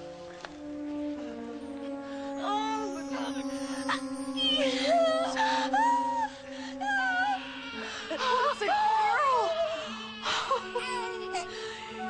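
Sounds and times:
soft sustained music: 0.0s - 12.0s
newborn baby crying: 6.9s - 12.0s.

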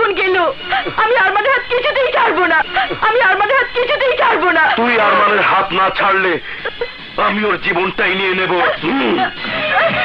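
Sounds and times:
man talking: 7.2s - 9.3s.

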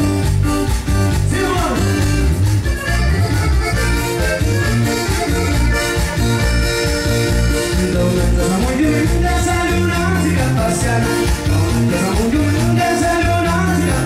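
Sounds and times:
accordion melody: 0.0s - 14.0s
band playing dance music: 0.0s - 14.0s.

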